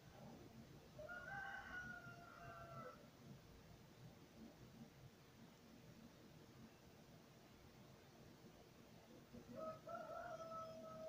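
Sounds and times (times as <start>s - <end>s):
rooster crowing faintly: 0.9s - 3.1s, 9.3s - 11.0s.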